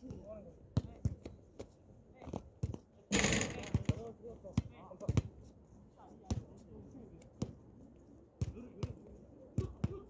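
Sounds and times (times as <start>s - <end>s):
basketball bouncing on hard court: 2.6s - 5.3s.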